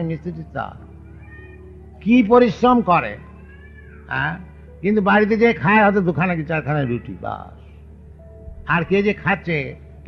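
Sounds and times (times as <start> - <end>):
man lecturing: 0.0 - 0.8, 2.0 - 3.2, 4.1 - 7.5, 8.7 - 9.8.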